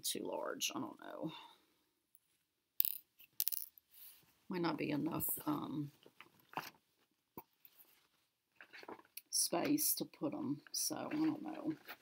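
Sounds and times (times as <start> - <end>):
small hard objects clinking: 2.8 - 3.7.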